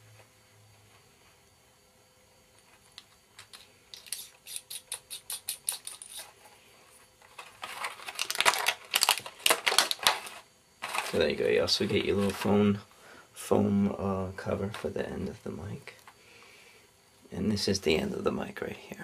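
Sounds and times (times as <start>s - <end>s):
rustling and clattering: 5.9s - 12.5s.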